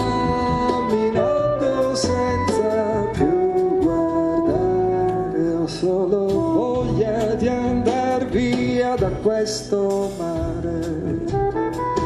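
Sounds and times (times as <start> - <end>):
man singing: 0.0 - 11.8.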